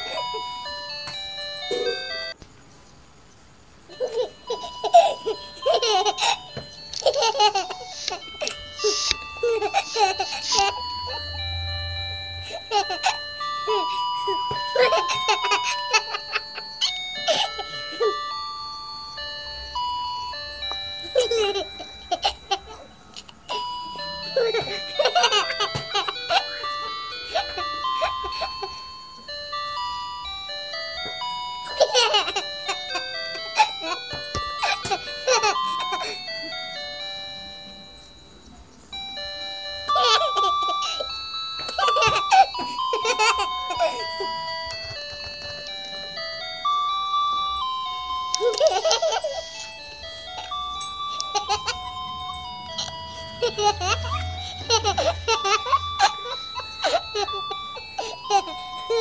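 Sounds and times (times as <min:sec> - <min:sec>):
baby giggling: 0:03.9 - 0:11.4, 0:17.2 - 0:18.2, 0:21.0 - 0:23.7, 0:24.3 - 0:28.8, 0:31.7 - 0:36.2, 0:39.9 - 0:44.4, 0:48.3 - 0:49.6, 0:50.4 - 0:51.9, 0:52.7 - 0:59.0
electronic beeping jingle: 0:07.6 - 0:59.0.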